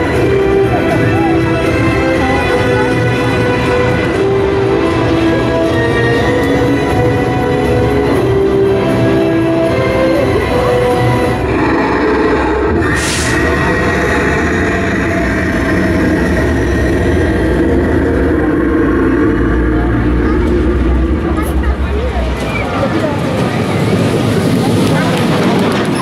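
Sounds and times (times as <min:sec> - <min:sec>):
roller coaster rumbling on track: 0:00.0 - 0:26.0.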